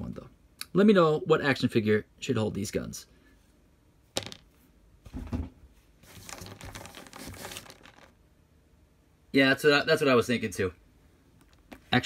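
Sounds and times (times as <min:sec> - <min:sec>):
crinkling rustle: 0:06.0 - 0:08.2.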